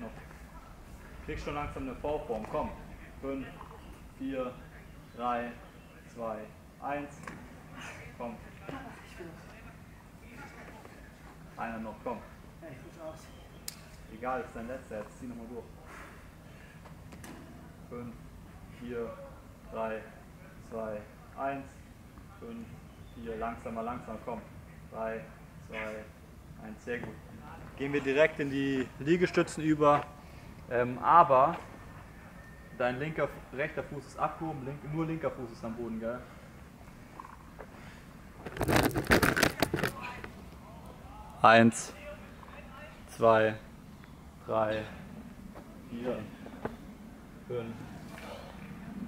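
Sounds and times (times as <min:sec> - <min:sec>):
quiet outdoor background: 0:00.0 - 0:49.0
crackling handling noise: 0:38.3 - 0:40.6.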